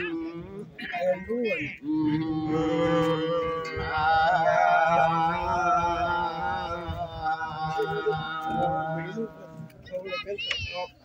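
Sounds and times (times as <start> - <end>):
man singing chant-like song: 0.0 - 10.2.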